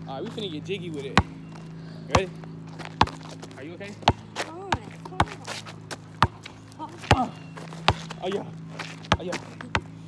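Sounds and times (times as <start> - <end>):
basketball bouncing: 1.1 - 1.4, 2.1 - 8.2, 9.0 - 10.0.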